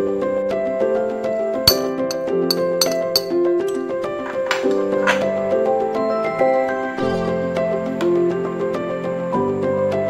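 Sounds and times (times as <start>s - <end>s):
background music with sustained notes: 0.0s - 10.0s
utensil tapping glass bowl: 1.7s - 3.8s.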